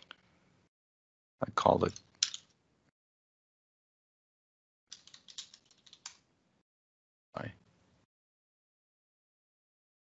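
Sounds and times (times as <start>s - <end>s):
keyboard typing: 4.9s - 6.2s.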